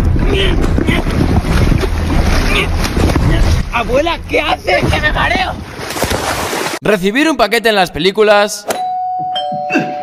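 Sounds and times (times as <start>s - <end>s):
wind rumble on microphone: 0.0s - 4.0s
water sloshing and splashing: 0.0s - 6.8s.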